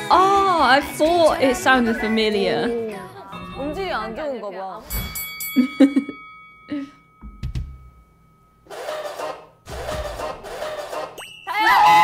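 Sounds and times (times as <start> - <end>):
chiming ding: 4.8 - 8.7, 11.2 - 12.0.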